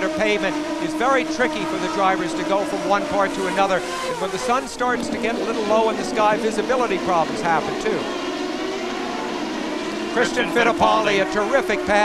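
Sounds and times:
race car engines at speed: 0.0s - 12.0s.

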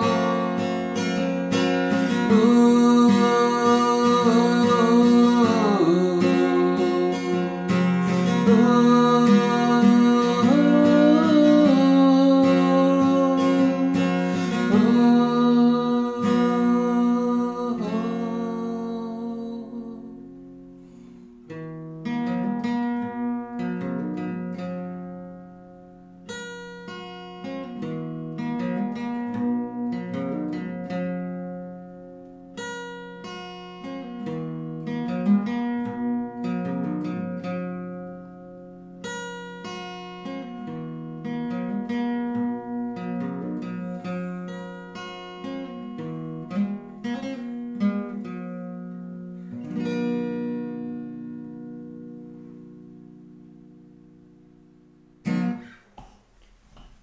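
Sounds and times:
fingerpicked acoustic guitar: 0.0s - 57.0s.

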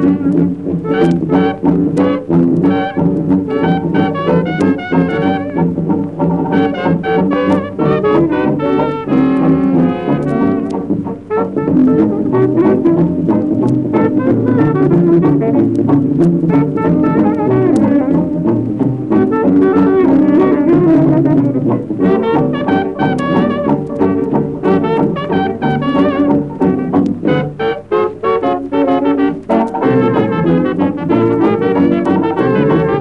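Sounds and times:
jazz band playing: 0.0s - 33.0s.

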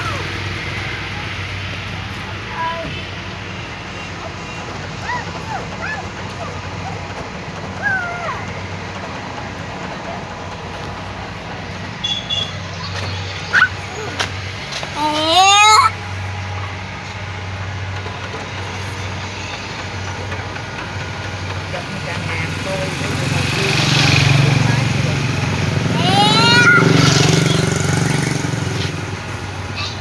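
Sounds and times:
child squealing: 13.5s - 14.2s, 15.0s - 16.0s, 25.9s - 27.6s.

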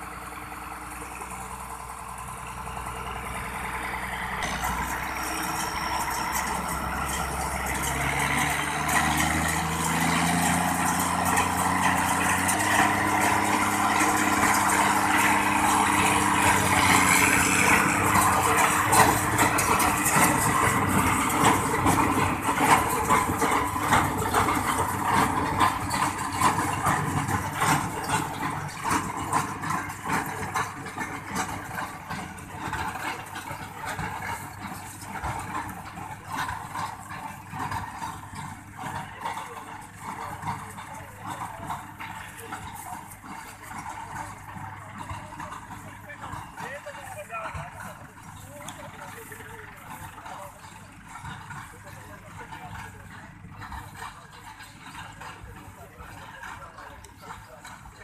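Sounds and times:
tractor engine running: 0.0s - 58.0s
baler mechanism clattering: 0.9s - 55.5s.

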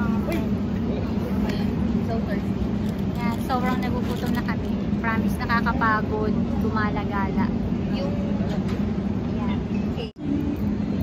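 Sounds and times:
low hum of traffic: 0.0s - 11.0s.

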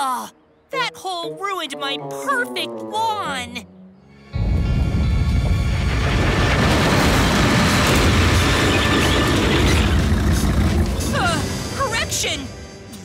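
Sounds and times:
background music: 0.0s - 13.0s
loud steady rumbling: 4.4s - 11.8s.

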